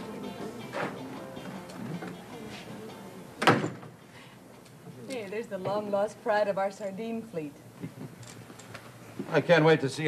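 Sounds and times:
music: 0:00.0 - 0:03.8.

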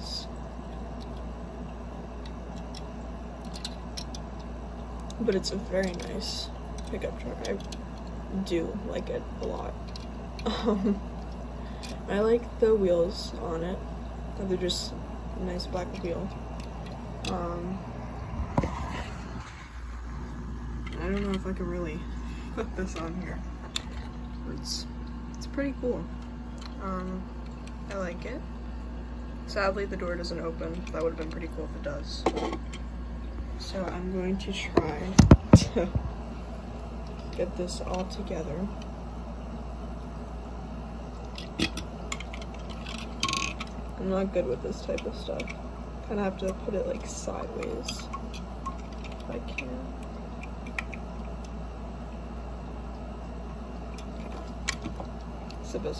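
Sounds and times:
steady low hum: 0:00.0 - 0:55.9.

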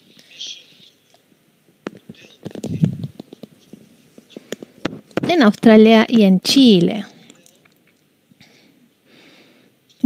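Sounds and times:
breathy hiss of breath: 0:08.4 - 0:09.8.

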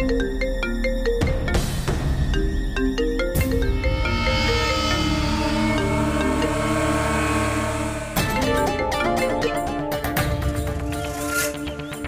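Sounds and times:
deep low drone: 0:03.4 - 0:09.2
sustained held notes: 0:03.4 - 0:10.0.

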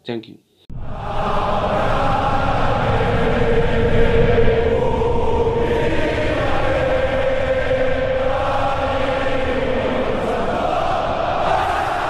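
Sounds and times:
many voices chanting in unison: 0:00.7 - 0:12.0.

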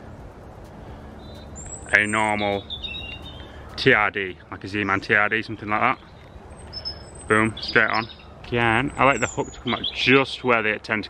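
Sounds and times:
faint outdoor background noise: 0:00.0 - 0:11.0
high bird whistle: 0:01.1 - 0:03.8, 0:05.9 - 0:10.2.

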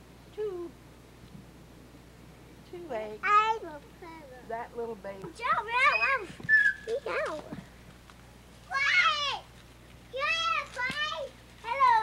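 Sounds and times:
small child squealing: 0:05.9 - 0:06.9.

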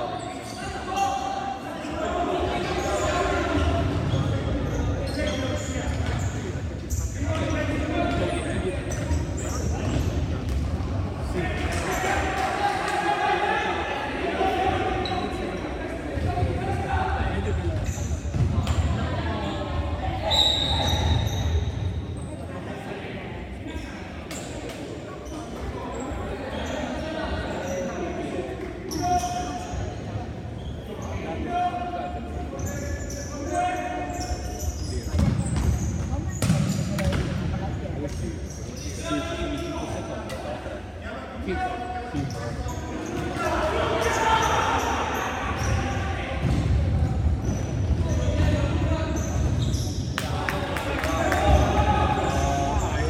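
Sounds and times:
players shouting: 0:43.2 - 0:46.5.

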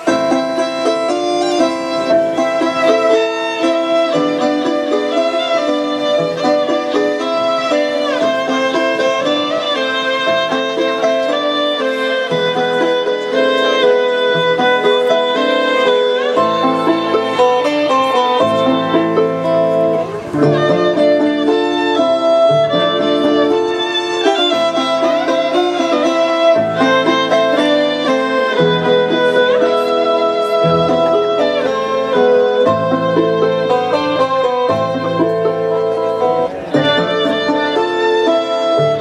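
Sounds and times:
backing track: 0:00.0 - 0:39.0
electric violin melody: 0:00.0 - 0:39.0.

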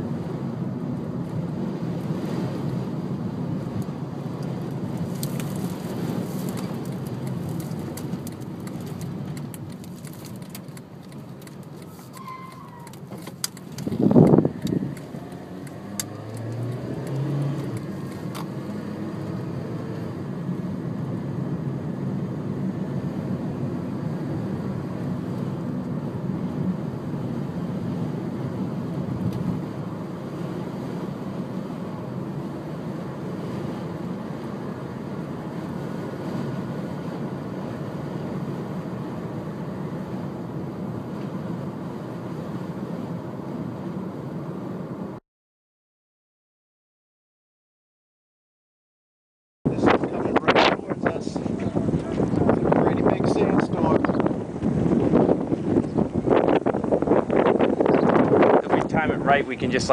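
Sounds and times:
road noise inside car: 0:00.0 - 0:45.2, 0:49.7 - 0:59.9
wind: 0:00.0 - 0:45.2, 0:49.6 - 0:59.9.

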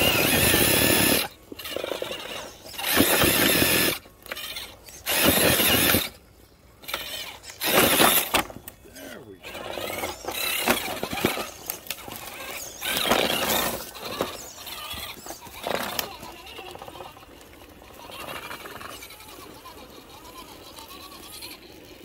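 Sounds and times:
electric motor whining: 0:00.0 - 0:22.0.

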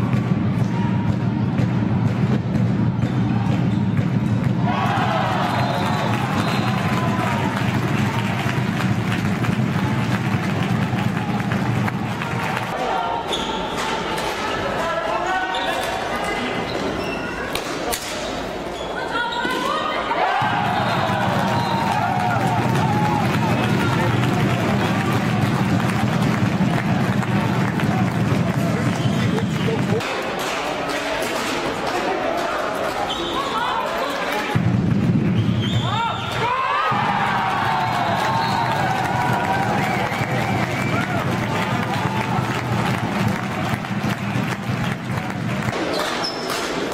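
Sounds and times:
indoor hall noise: 0:00.0 - 0:46.9.

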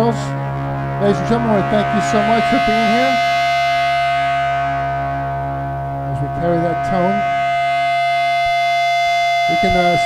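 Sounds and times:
electric and bass guitar chord: 0:00.0 - 0:10.0.

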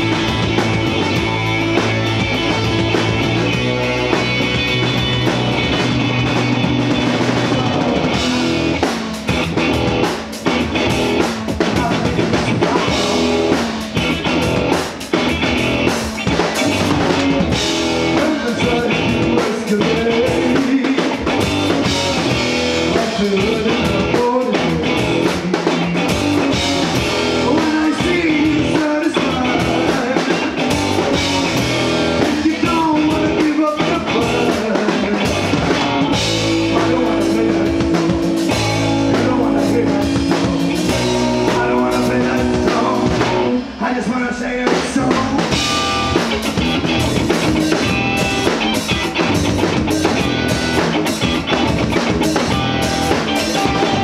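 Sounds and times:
rock band playing live: 0:00.0 - 0:54.0
sung vocals: 0:00.0 - 0:54.0.

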